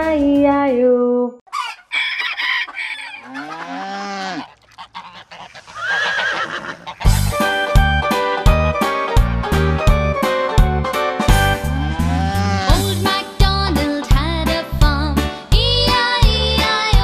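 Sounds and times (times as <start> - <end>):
music: 0.0 - 0.8, 7.0 - 17.0
honking animal call: 1.5 - 7.4, 11.5 - 13.0
cow mooing: 3.0 - 7.0, 11.6 - 12.9
person singing: 11.6 - 17.0.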